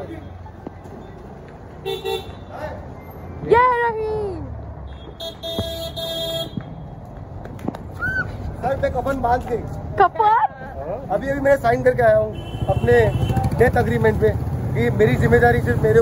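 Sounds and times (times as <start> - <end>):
low traffic rumble: 0.0 - 16.0
vehicle horn toot: 4.9 - 6.6, 12.3 - 13.5.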